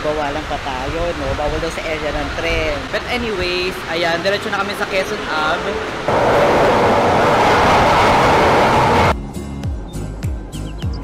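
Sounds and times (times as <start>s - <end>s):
train wheels rushing on rails: 6.0s - 9.1s
train mid-pitched hum: 6.1s - 9.1s.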